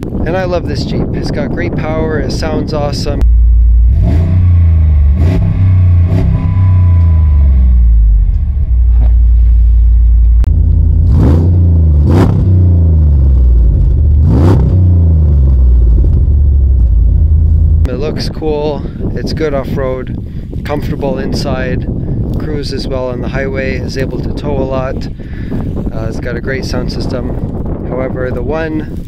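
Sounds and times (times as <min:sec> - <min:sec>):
car engine rumbling and revving: 0:02.2 - 0:18.4.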